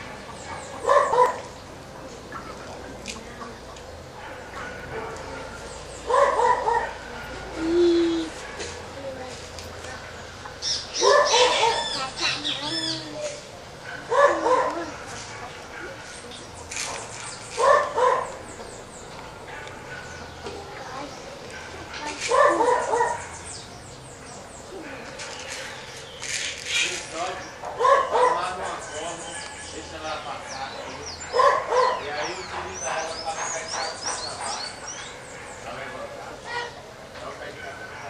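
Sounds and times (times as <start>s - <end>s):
dog barking: 0.5s - 1.5s, 4.2s - 7.6s, 8.3s - 8.8s, 11.0s - 12.0s, 13.8s - 16.2s, 17.6s - 18.4s, 19.5s - 20.4s, 21.5s - 23.4s, 27.4s - 29.6s, 30.5s - 36.8s, 37.5s - 38.0s.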